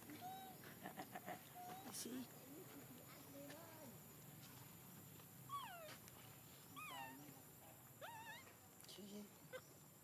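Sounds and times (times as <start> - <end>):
young monkey crying: 0.2 - 0.6, 5.5 - 6.0, 6.8 - 7.3, 8.0 - 8.6, 9.5 - 9.8.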